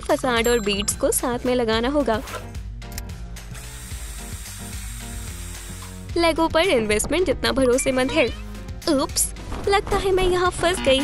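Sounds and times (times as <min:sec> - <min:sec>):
cordless drill driving a screw: 0:03.6 - 0:06.0.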